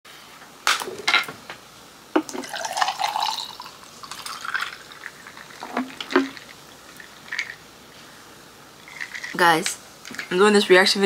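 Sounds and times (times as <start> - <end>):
drink pouring into glass jar: 2.3 - 7.6.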